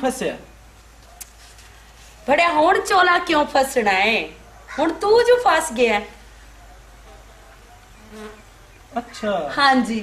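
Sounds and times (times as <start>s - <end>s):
faint buzz: 5.9s - 9.9s.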